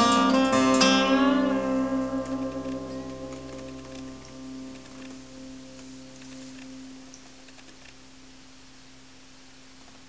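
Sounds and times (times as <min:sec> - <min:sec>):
acoustic guitar chord ringing: 0:00.0 - 0:07.2
fingers clicking on guitar strings: 0:00.0 - 0:08.0.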